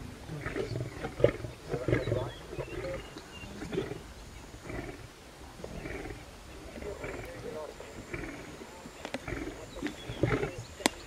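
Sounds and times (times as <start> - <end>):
lions growling low: 0.2 - 10.9.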